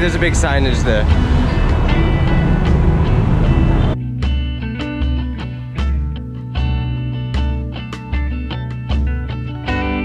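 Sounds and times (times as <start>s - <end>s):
street traffic: 0.0s - 4.0s
plucked guitar music: 0.0s - 10.0s.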